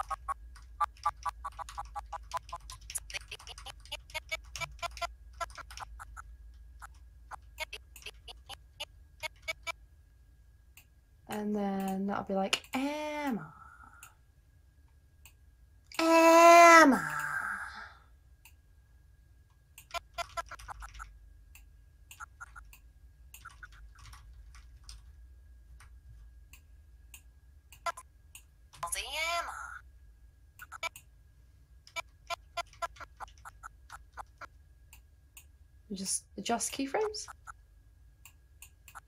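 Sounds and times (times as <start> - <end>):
computer mouse clicking: 0.0 - 8.6, 19.8 - 25.0, 31.9 - 35.5, 38.2 - 39.0.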